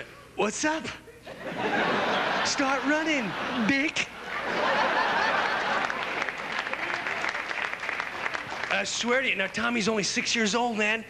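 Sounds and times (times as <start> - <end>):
audience laughing: 1.3 - 8.7
audience clapping: 4.2 - 10.4.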